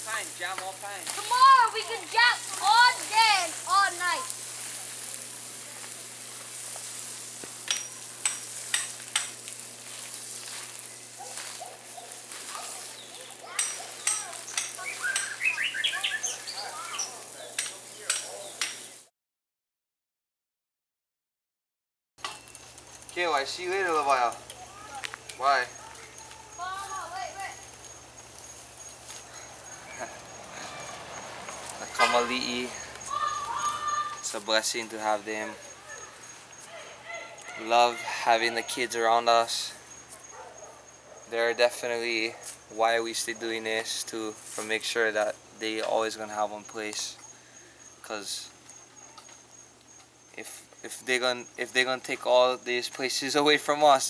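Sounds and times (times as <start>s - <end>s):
garden hose spraying water: 0.0s - 19.1s, 22.2s - 54.0s
bird chirps: 12.8s - 19.0s, 25.6s - 34.4s
faint voices calling out: 24.4s - 28.2s, 29.3s - 39.2s.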